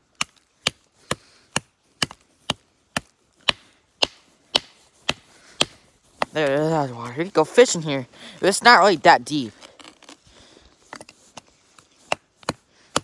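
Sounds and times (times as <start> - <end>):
stick striking ice: 0.2 - 6.4.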